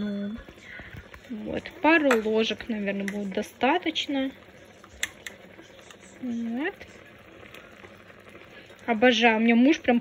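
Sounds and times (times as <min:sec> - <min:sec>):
stew bubbling in a pan: 0:00.0 - 0:10.0.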